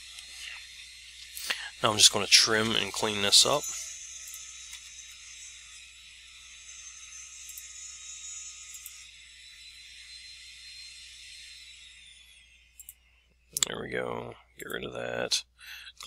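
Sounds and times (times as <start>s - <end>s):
faint high whine: 0.0s - 16.0s.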